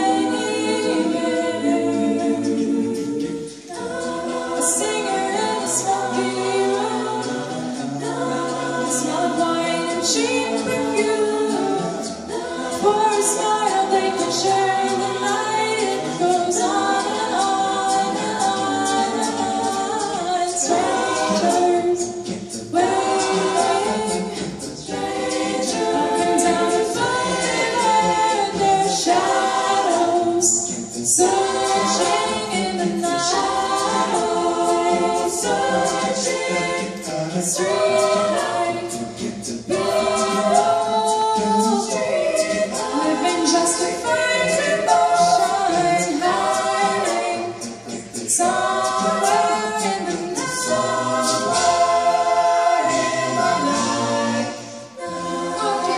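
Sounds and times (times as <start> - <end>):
choir singing a cappella: 0.0 - 55.9.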